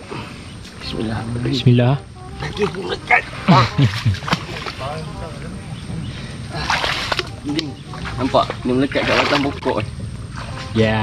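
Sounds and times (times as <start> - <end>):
legs wading through muddy water: 2.4 - 10.8.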